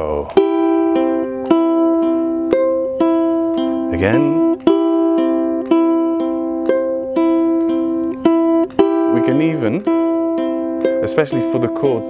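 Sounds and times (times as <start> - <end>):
ukulele fingerpicked arpeggio: 0.0 - 12.0.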